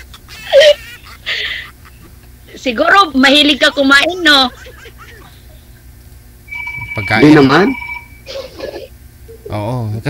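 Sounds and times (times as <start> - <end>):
low hum: 0.0 - 9.5
phone tone beep: 6.5 - 8.3.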